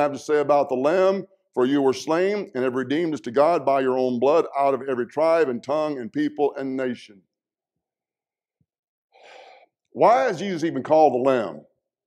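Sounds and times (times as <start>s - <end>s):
man taking short breath: 9.1s - 9.8s.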